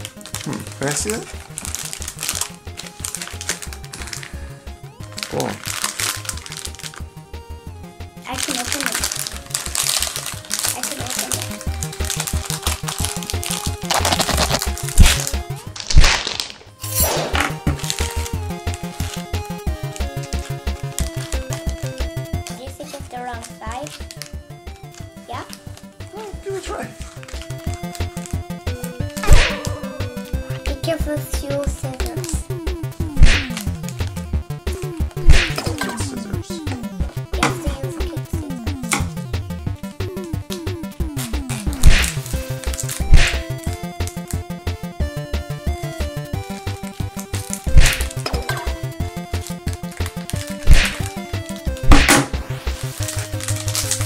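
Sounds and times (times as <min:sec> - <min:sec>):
foil bag crinkling: 0:00.0 - 0:07.1, 0:08.3 - 0:16.8, 0:17.5 - 0:32.5, 0:41.5 - 0:44.8, 0:45.6 - 0:54.0
background music with steady beat: 0:00.0 - 0:54.0.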